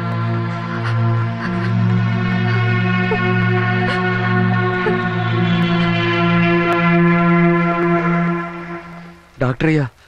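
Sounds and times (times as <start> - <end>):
sustained bell-like chord: 0.0 - 9.6.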